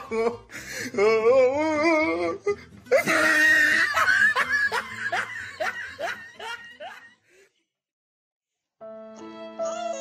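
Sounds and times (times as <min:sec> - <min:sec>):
man mock sobbing: 0:00.0 - 0:07.1.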